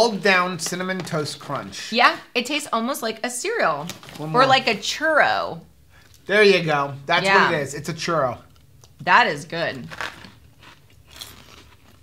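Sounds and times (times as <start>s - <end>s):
pork rind crunching: 9.8s - 12.0s.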